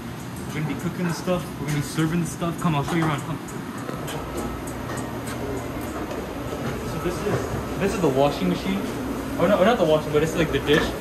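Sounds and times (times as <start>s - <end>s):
kitchen machinery rumble and hiss: 0.0s - 11.0s.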